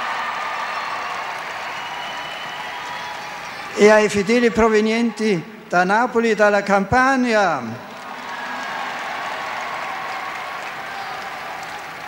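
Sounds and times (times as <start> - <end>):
crowd applauding: 0.0 - 4.9, 7.8 - 12.0.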